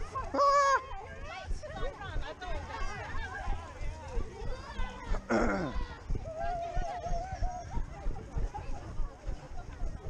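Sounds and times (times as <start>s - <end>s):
distant voices of runners: 0.0s - 10.0s.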